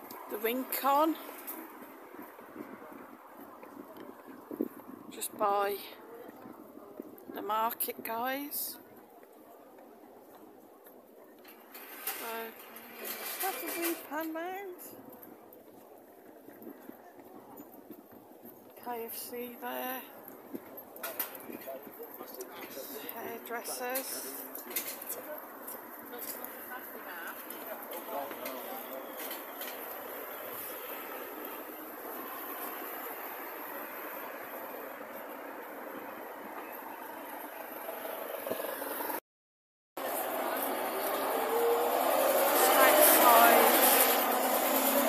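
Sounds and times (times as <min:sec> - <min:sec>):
quiet street background noise: 0:00.0 - 0:39.2, 0:40.0 - 0:45.0
wind on microphone: 0:01.7 - 0:05.4.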